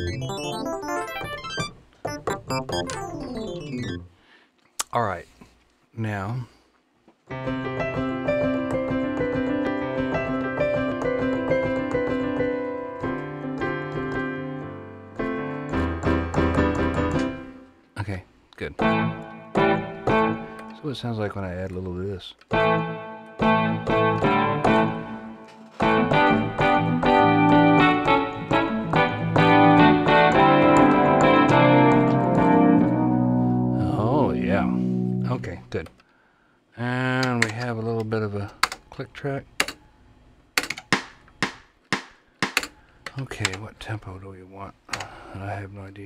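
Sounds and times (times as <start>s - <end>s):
piano playing chords: 0.0s - 4.2s, 7.3s - 17.8s, 18.8s - 21.0s, 22.5s - 35.7s.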